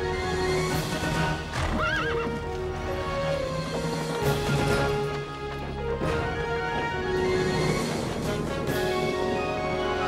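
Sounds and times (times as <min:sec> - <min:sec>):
orchestral music: 0:00.0 - 0:10.0
horse whinnying: 0:00.6 - 0:03.0.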